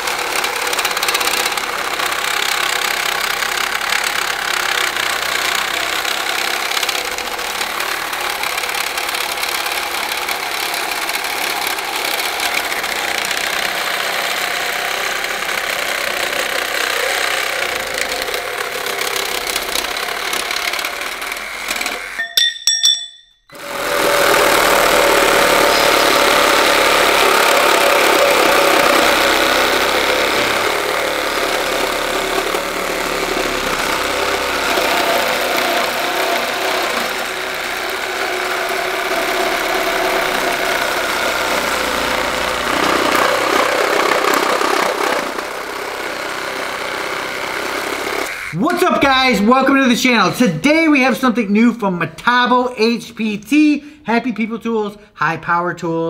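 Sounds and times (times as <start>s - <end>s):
reciprocating saw cutting wood: 0.0s - 22.3s, 23.5s - 49.9s
reciprocating saw cutting metal: 0.0s - 49.0s.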